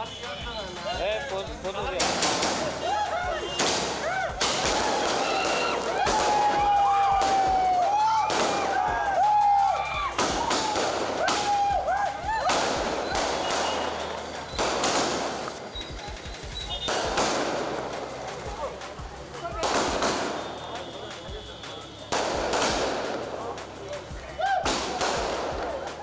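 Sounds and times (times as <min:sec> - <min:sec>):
crowd shouting and whistling: 0:00.0 - 0:02.0, 0:02.6 - 0:26.0
firecrackers bursting: 0:00.0 - 0:26.0.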